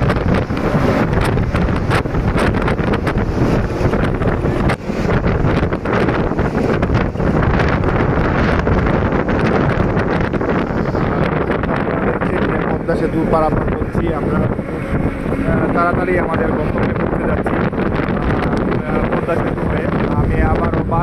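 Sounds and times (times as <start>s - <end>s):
bus rumble: 0.0s - 21.0s
tyres on road: 0.0s - 21.0s
wind buffeting microphone: 0.0s - 21.0s.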